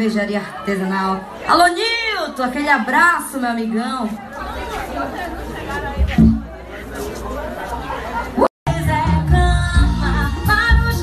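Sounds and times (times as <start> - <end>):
voices chattering in a bar: 0.0 - 8.5.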